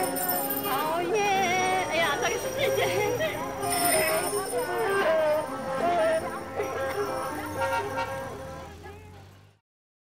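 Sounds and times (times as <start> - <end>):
voices or music: 0.0 - 9.6.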